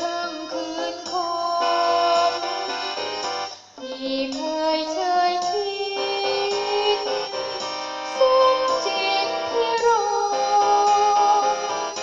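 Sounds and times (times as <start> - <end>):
electronic keyboard backing: 0.0 - 12.0
high voice singing: 0.0 - 12.0.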